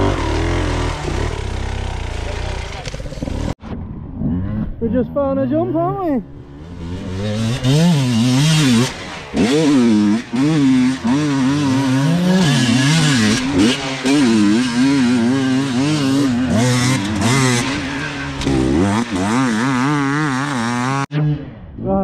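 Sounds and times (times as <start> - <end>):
dirt bike engine revving: 0.0 - 5.1, 6.2 - 21.8.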